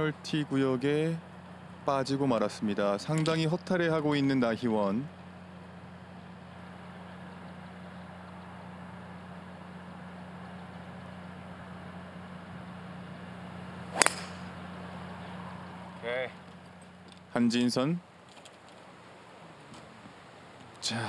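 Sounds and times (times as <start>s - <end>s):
steady low hum: 0.0s - 21.0s
golf club striking ball: 13.9s - 14.7s.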